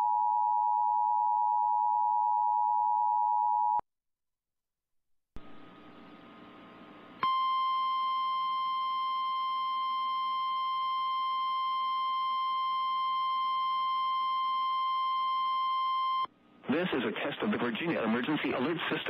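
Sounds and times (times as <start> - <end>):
loud steady electronic tone: 7.2 - 16.3.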